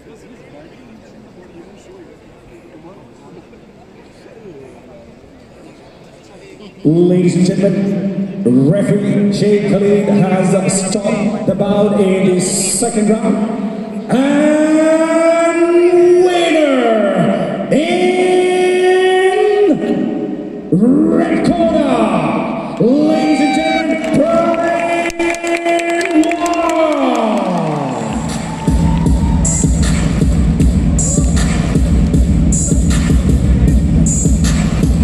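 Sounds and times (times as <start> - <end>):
loudspeaker pitched calls: 6.8 - 35.0
dance track with heavy bass: 28.1 - 35.0.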